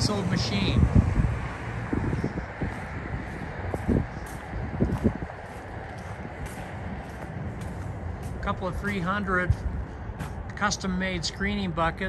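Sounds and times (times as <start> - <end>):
wind rumbling on microphone: 0.0 - 12.0
footsteps on gravel: 2.0 - 10.6.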